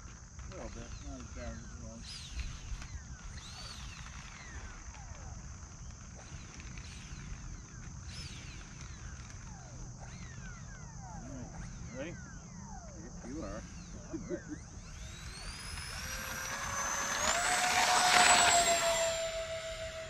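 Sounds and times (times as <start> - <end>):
electric ducted fan whine: 0.0 - 20.0
insect drone: 0.0 - 20.0.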